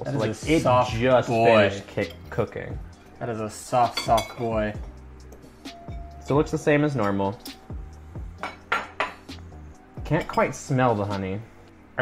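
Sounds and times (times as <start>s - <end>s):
cutlery clinking on plates: 8.4s - 9.3s.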